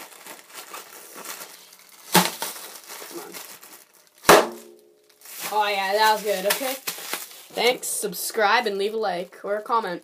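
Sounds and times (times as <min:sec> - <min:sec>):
bubble wrap popping: 0:00.0 - 0:07.9.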